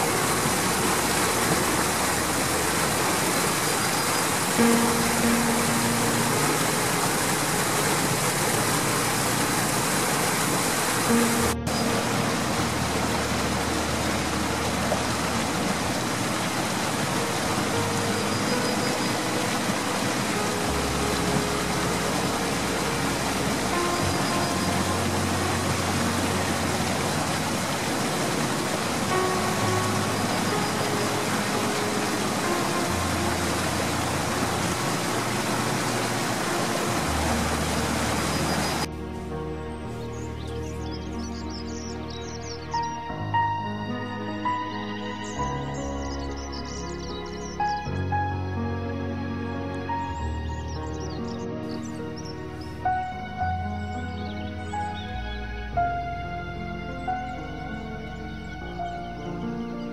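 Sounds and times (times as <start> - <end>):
mountain stream rushing: 0.0 - 59.9
slow bass and keyboard music: 0.0 - 59.9.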